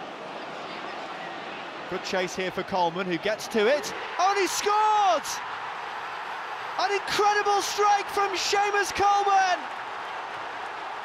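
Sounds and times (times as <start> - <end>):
stadium crowd murmur: 0.0 - 8.3.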